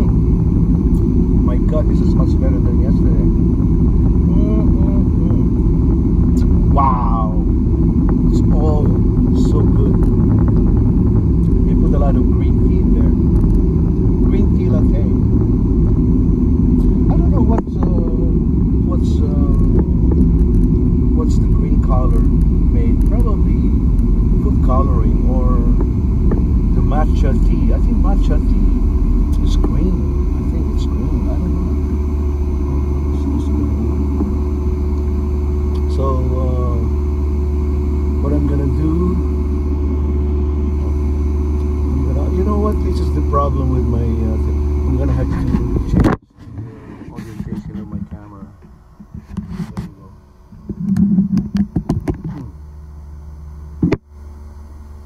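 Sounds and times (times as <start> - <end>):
engine and road rumble: 0.0 - 55.0
low hum: 0.0 - 55.0
man talking: 1.4 - 3.4, 4.2 - 5.6, 6.4 - 7.5, 8.3 - 10.2, 11.4 - 13.2, 14.2 - 15.3, 16.8 - 19.8, 21.1 - 25.8, 26.7 - 34.4, 35.7 - 37.0, 38.2 - 39.3, 41.8 - 48.6, 49.6 - 50.2.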